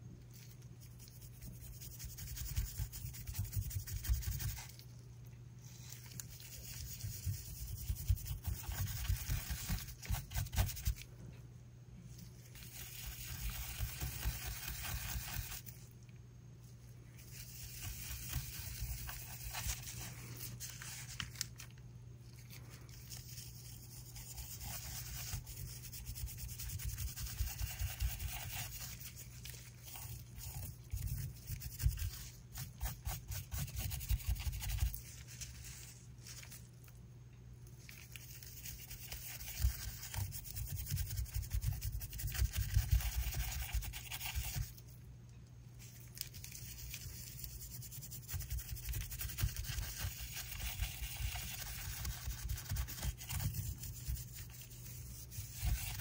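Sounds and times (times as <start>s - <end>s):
small brush scrubbing: 0.0s - 5.0s, 5.6s - 11.1s, 12.1s - 16.0s, 16.6s - 36.9s, 37.8s - 45.0s, 45.8s - 56.0s.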